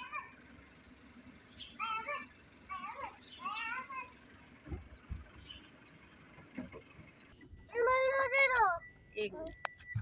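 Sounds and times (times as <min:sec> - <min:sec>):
small birds chirping: 0:00.0 - 0:09.7.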